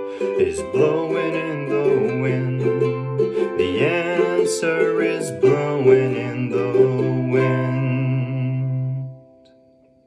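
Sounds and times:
person singing: 0.0s - 9.5s
ukulele chord ringing: 0.0s - 10.0s.

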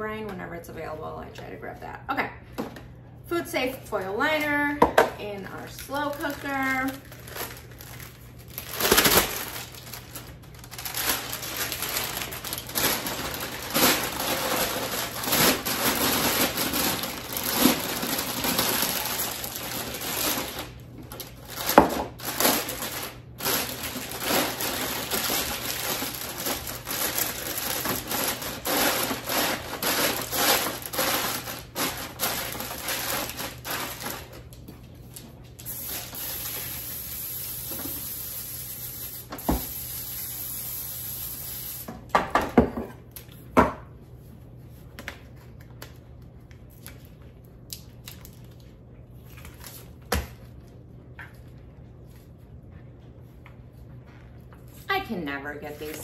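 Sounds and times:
foil crinkling and rustling: 5.5s - 36.8s, 45.0s - 50.0s.

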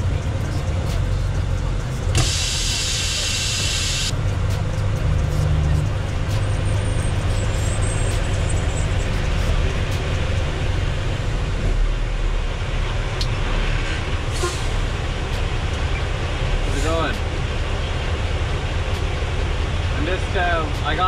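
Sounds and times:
diesel truck engine rumbling: 0.0s - 21.0s.

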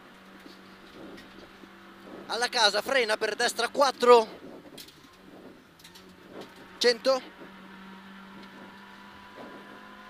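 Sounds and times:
car engine hum inside cabin: 0.0s - 10.0s.

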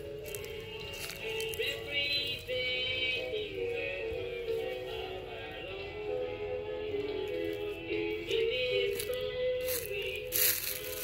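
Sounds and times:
music with gliding held vocals: 0.0s - 11.0s.

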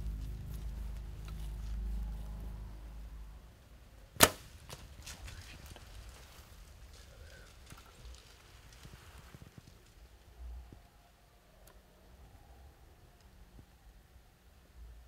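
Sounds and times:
bow string snap: 4.2s - 4.8s.

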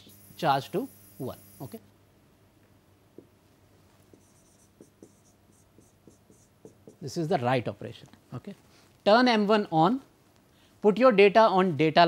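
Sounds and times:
stylus scratching across screen: 4.0s - 7.0s
stylus tapping on screen: 4.1s - 7.0s.

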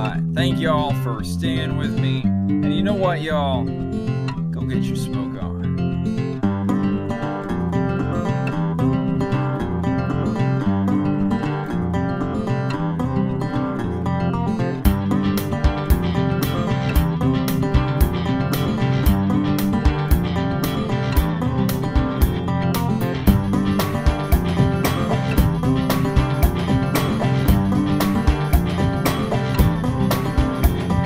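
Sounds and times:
strummed acoustic guitar: 0.0s - 31.0s
percussive beat: 14.8s - 31.0s.

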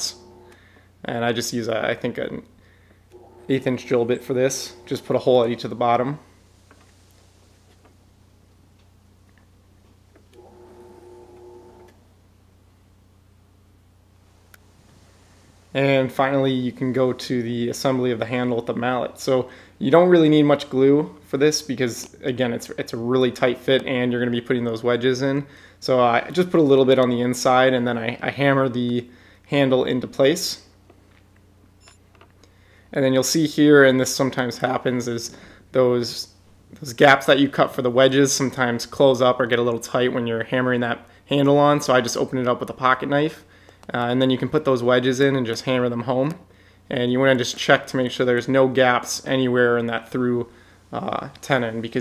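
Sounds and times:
drill press humming: 0.0s - 1.0s, 2.8s - 7.0s, 10.1s - 12.1s
background hum: 0.0s - 52.0s
steady pitched tone: 3.2s - 6.6s
person narrating: 3.4s - 6.3s, 33.0s - 52.0s.

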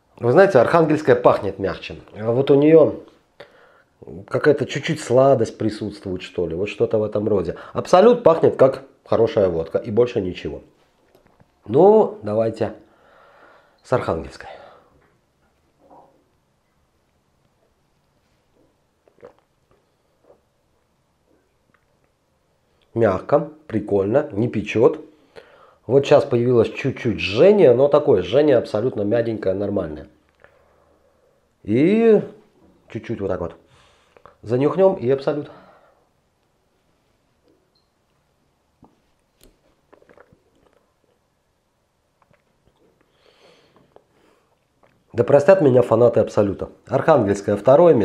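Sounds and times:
wet mouth clicks and smacks: 19.0s - 20.9s, 21.6s - 22.2s, 38.8s - 41.2s, 42.2s - 43.2s, 43.8s - 45.1s.

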